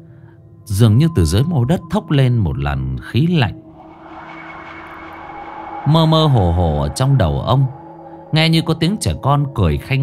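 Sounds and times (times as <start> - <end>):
rushing wind-like whoosh: 3.5 - 9.5.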